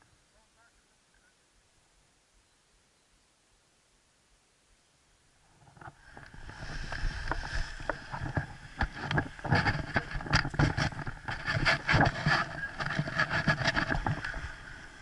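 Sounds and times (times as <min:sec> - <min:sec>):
wing and lines rustling: 0:05.4 - 0:15.0.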